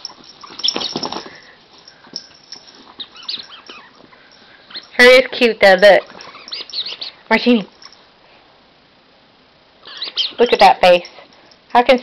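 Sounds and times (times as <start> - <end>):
dog whining: 3.0 - 7.2, 9.8 - 10.7.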